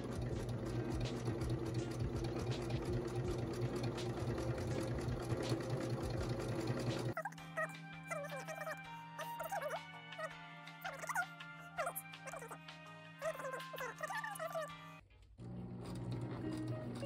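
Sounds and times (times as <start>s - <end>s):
sewing machine stitching: 0.0s - 7.2s, 15.4s - 17.0s.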